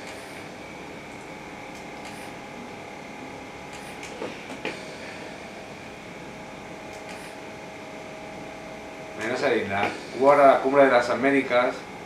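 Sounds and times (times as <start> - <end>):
mechanical hum and hiss: 0.0 - 12.0.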